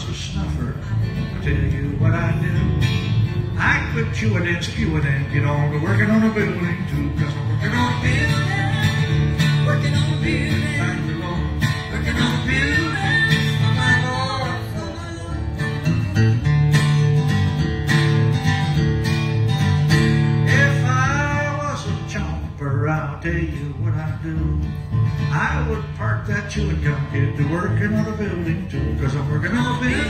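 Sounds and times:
acoustic guitar: 0.0 - 30.0
plucked upright bass: 0.0 - 30.0.

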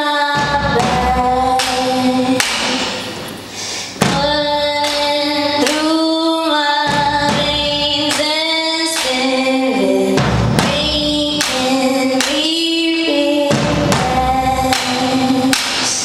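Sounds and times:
woman singing long held notes: 0.0 - 2.8, 4.0 - 16.0
slow low drumbeat: 0.4 - 3.4, 4.0 - 6.1, 6.8 - 9.3, 10.2 - 12.5, 13.4 - 16.0.

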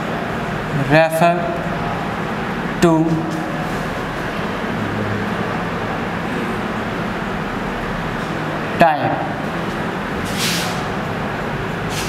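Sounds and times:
rushing background noise: 0.0 - 12.0.

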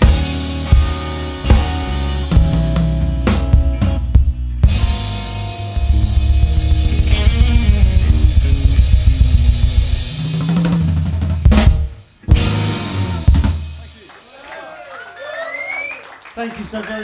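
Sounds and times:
electric guitar: 0.0 - 13.9
bass guitar: 0.0 - 14.0
drum kit and cymbals: 0.0 - 14.1.

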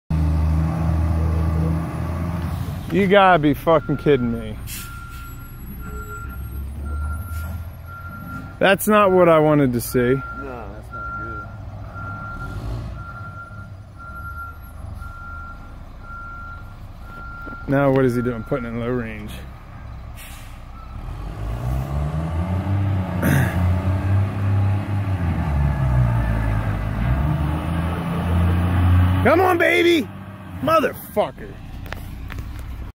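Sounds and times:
truck engine rumble: 0.1 - 32.9
truck backup alarm beeping: 2.9 - 22.0.

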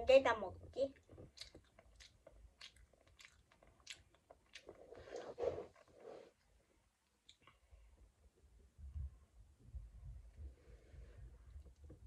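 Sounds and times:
faint chewing: 0.8 - 7.8.

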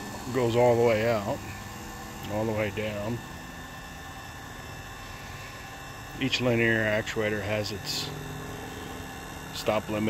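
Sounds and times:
electric motor hum: 0.0 - 10.0.

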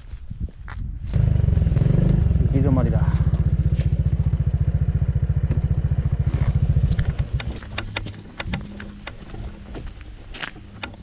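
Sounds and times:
motorcycle engine running: 1.0 - 11.0
sharp ticks and crunches: 5.4 - 11.0.

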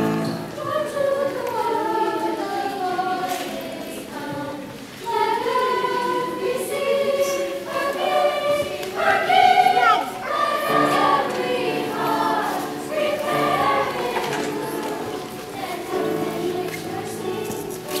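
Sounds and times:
choir singing in parts: 0.0 - 18.0.

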